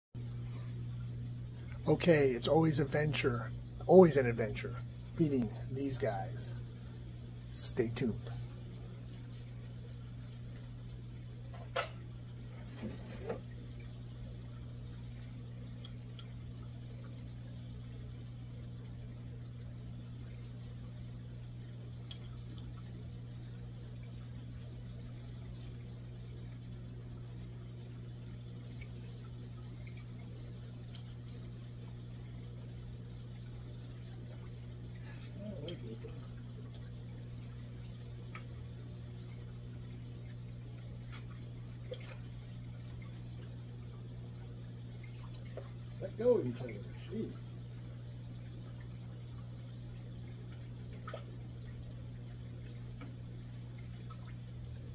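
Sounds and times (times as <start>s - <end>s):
aquarium pumps humming: 0.2s - 54.9s
water trickling and bubbling: 0.2s - 54.9s
sharp clicks or small splashes: 22.0s - 22.9s, 29.6s - 32.8s, 40.3s - 43.2s, 50.5s - 51.8s.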